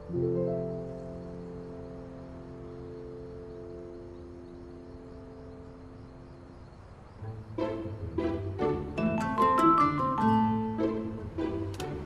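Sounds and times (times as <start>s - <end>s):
sustained keyboard chord: 9.0s - 11.2s.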